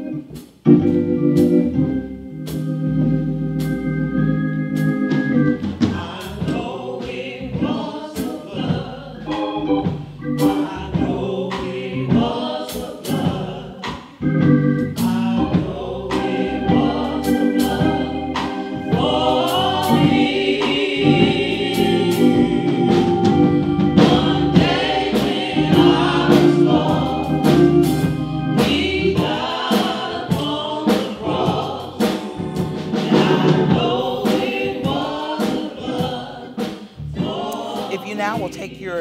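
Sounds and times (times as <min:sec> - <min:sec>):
instrumental backing: 0:00.0 - 0:39.0
gospel choir singing: 0:00.8 - 0:39.0.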